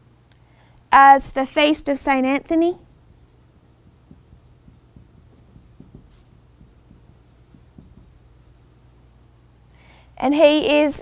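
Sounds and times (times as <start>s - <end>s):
marker squeaking on whiteboard: 2.8s - 9.6s.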